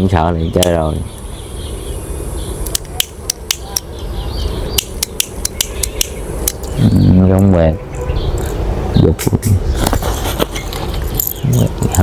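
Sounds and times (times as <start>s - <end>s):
sharp irregular clicks: 2.6s - 3.9s, 4.7s - 6.8s.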